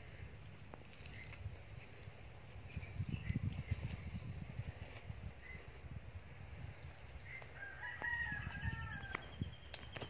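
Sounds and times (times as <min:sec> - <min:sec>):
rooster crowing: 0:07.5 - 0:09.4.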